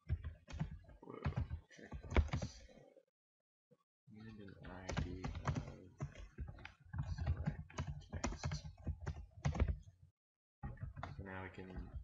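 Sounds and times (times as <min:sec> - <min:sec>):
typing on computer keyboard: 0:00.0 - 0:02.6, 0:04.6 - 0:09.9
person speaking: 0:01.0 - 0:02.9, 0:04.1 - 0:09.8, 0:11.0 - 0:12.0.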